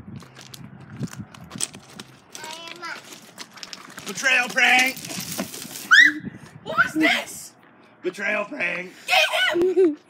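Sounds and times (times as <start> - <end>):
footsteps crunching on rock: 0.2 - 5.9.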